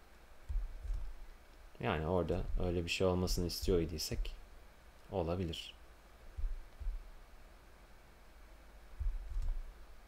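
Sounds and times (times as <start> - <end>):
computer mouse clicks: 9.2 - 9.6.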